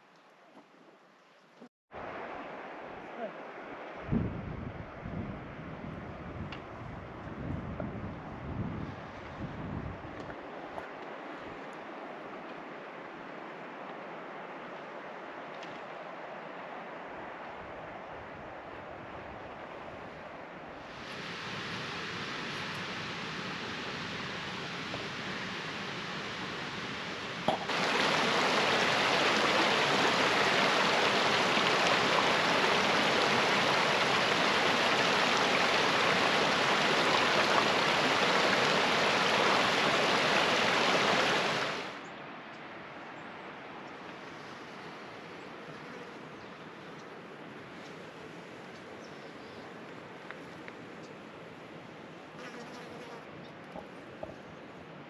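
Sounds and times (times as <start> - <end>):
creek rushing over rocks: 20.8 - 42.1
faint hiss: 20.8 - 42.1.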